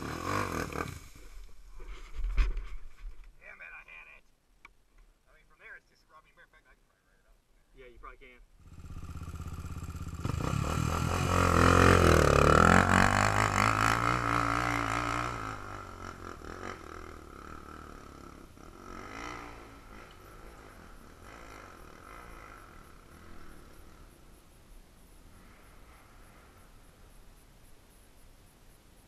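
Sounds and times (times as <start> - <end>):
quad engine revving: 0.0 - 1.2, 8.6 - 24.0.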